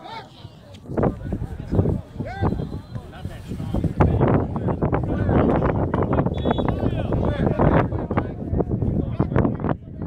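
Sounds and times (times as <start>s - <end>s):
wind on microphone: 0.8s - 10.0s.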